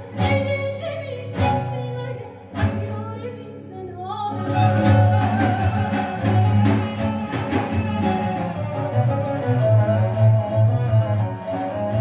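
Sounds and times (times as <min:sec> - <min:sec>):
woman singing: 0:00.0 - 0:08.0
plucked oud notes: 0:04.3 - 0:12.0.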